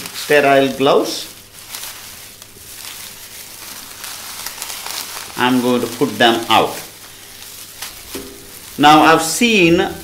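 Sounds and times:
plastic bag and paper crinkling: 0.0s - 10.0s.

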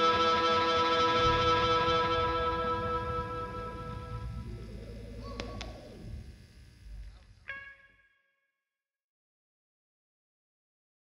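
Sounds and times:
low amp hum: 0.0s - 8.0s
distorted electric guitar chord: 0.0s - 8.1s.

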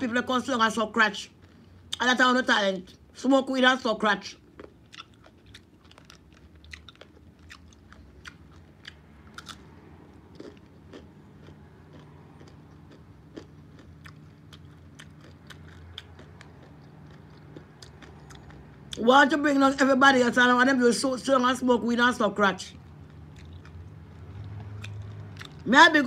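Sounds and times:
person chewing crunchy food: 1.1s - 2.1s, 4.2s - 19.0s, 22.7s - 25.8s.

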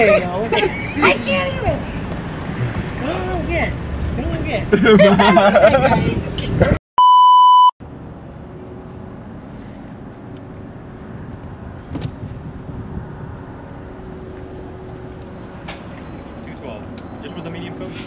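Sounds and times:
short electronic beep: 7.0s - 7.7s.

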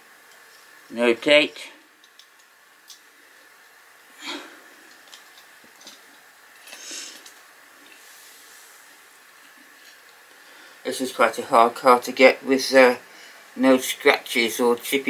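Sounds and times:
faint high hum and hiss: 0.0s - 15.0s
soft breaths: 6.7s - 9.1s, 10.2s - 10.9s, 13.0s - 13.6s.

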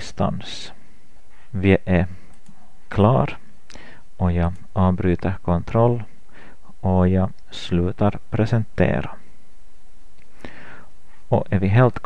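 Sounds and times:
microphone hum and hiss: 0.0s - 12.0s
person breathing: 0.8s - 2.4s, 3.7s - 4.2s, 6.2s - 6.8s, 10.3s - 11.3s.

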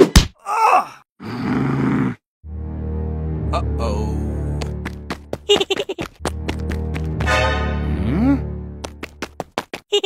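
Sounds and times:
double thwack: 0.0s - 0.4s.

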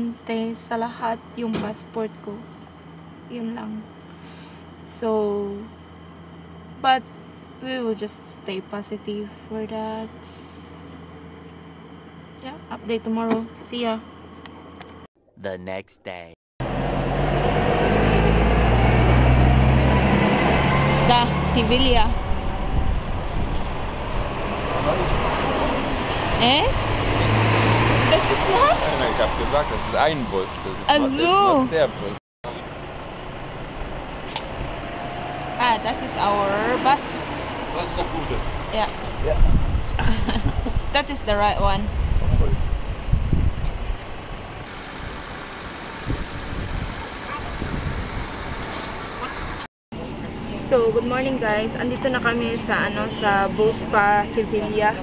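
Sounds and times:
road noise: 0.0s - 15.1s, 16.6s - 55.0s
street traffic: 0.0s - 15.1s, 16.6s - 55.0s
lorry engine drone: 16.6s - 48.4s.

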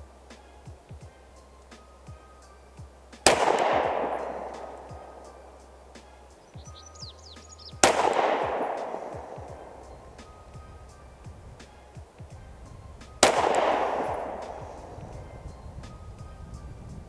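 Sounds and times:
pistol shots with echo: 3.2s - 6.1s, 7.8s - 10.6s, 13.0s - 15.5s.

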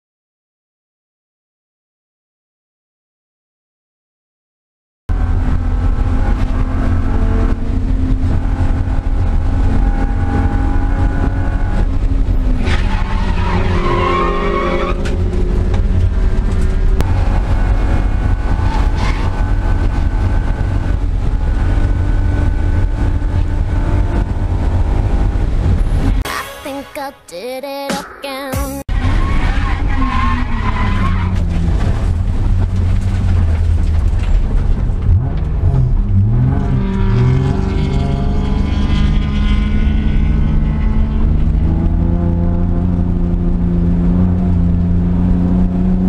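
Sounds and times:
car engine running hard: 5.1s - 26.2s, 28.9s - 46.0s
tires squealing: 11.8s - 19.8s, 28.9s - 41.9s.

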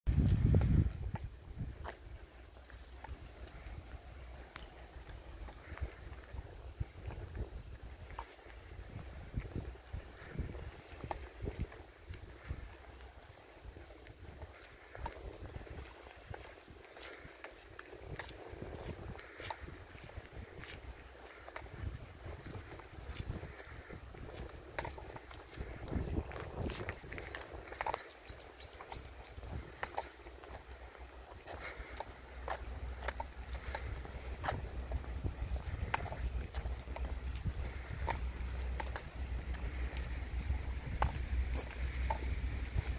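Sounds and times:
footsteps on paved road: 0.1s - 42.9s
wind rumble on microphone: 0.1s - 42.9s.

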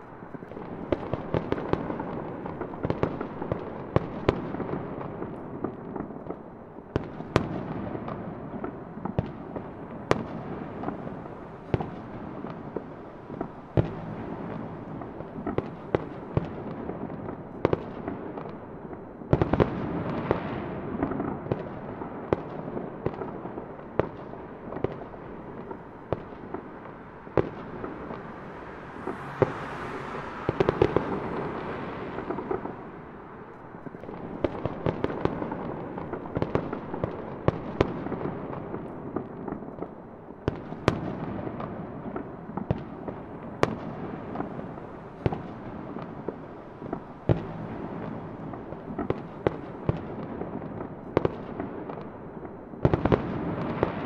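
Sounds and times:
fireworks popping and crackling: 0.0s - 54.0s.

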